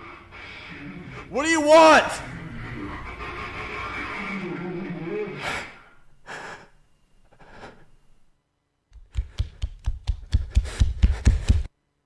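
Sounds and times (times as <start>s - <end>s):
low wavering voiced sound: 0.6s - 5.9s
person breathing hard and gasping: 5.4s - 8.0s, 9.1s - 11.7s.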